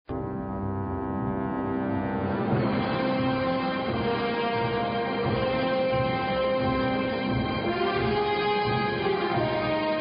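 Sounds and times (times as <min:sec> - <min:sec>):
deep sustained theme chord: 0:00.1 - 0:10.0.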